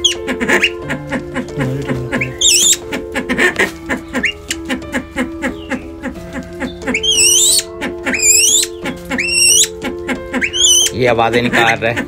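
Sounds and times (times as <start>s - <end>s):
background music with steady beat: 0.0s - 12.0s
pheasant calling: 0.0s - 12.0s.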